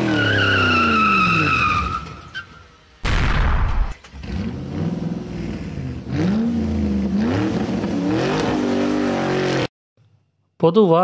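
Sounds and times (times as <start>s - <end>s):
tyres screeching: 0.0s - 2.8s.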